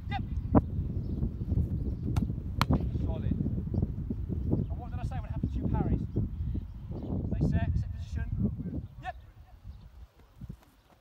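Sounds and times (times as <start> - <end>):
wind rumble on microphone: 0.0 - 10.7.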